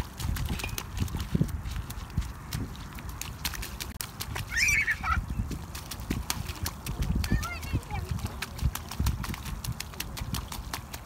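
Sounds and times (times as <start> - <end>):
wind rumble on microphone: 0.0 - 11.0
child calling: 4.5 - 5.2, 7.3 - 8.2.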